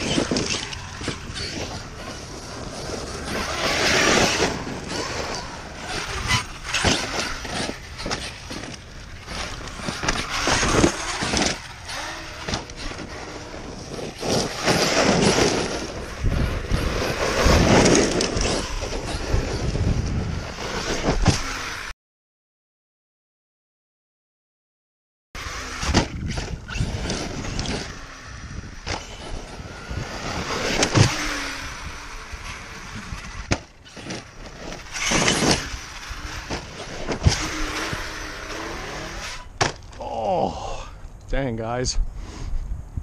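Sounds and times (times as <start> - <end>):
rc truck motor surging: 0.0 - 21.9, 25.4 - 39.6
tyres churning dirt and gravel: 0.0 - 21.9, 25.4 - 40.4.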